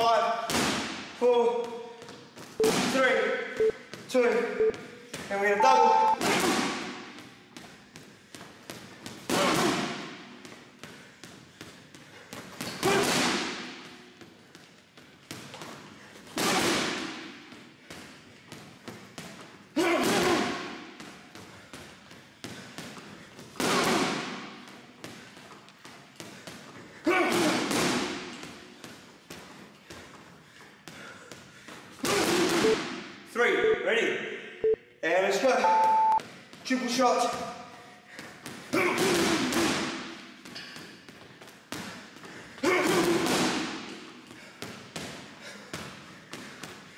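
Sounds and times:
gloves punching a heavy bag: 6.2 - 33.1, 38.1 - 46.9.

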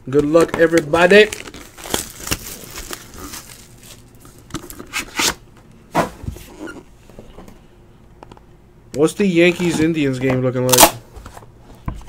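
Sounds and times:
plastic wrap rustling: 0.2 - 5.4.

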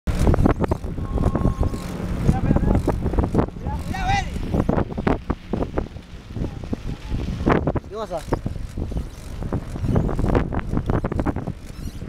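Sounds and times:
bicycle rattling over asphalt: 0.1 - 12.0
wind on microphone: 0.1 - 12.0.

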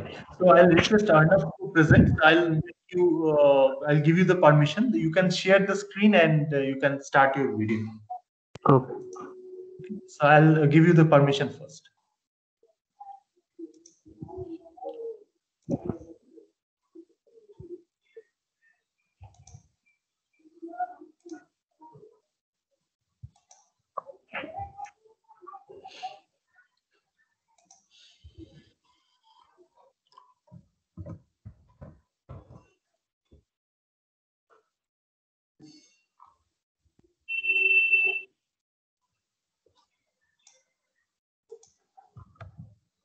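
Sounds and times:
electronic beep: 37.3 - 38.3.

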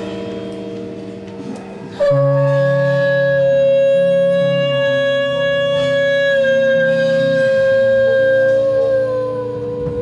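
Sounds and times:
experimental rock music: 0.0 - 10.0
long held high note: 0.0 - 10.0
low droning notes: 0.0 - 10.0.

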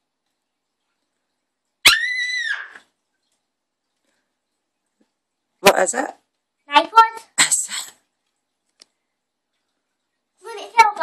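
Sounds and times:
child squealing excitedly: 1.8 - 2.8.

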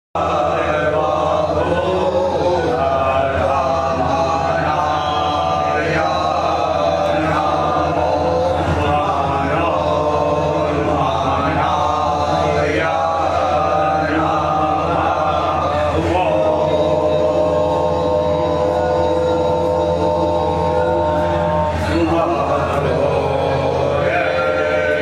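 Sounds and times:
steady low drone: 0.2 - 25.0
voices chanting a mantra: 0.2 - 25.0.

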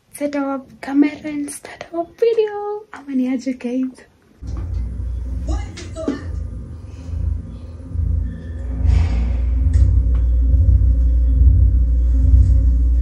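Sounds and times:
bass-heavy music from television: 4.4 - 13.0.

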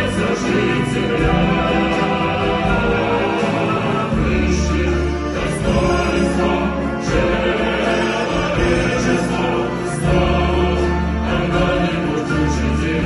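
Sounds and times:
grand piano: 0.0 - 13.0
mixed choir singing: 0.0 - 13.0.

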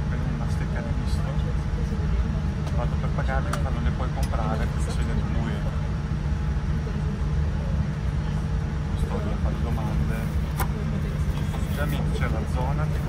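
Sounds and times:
aircraft cabin rumble: 0.0 - 13.0
faint passenger voices: 0.0 - 13.0.

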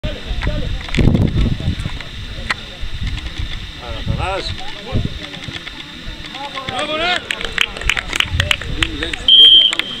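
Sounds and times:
people talking and calling out: 0.0 - 10.0
referee's whistle blast: 9.3 - 10.0.

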